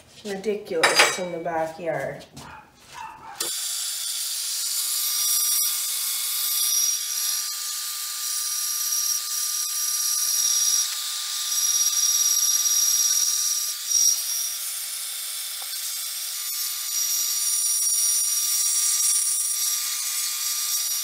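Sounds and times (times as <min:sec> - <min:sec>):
bandsaw cutting metal: 0:03.4 - 0:21.0.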